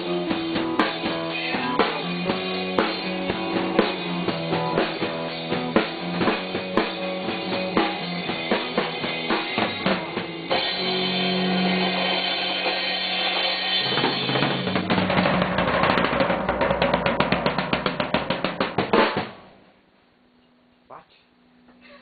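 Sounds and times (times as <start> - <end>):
drum roll: 0.0 - 19.6.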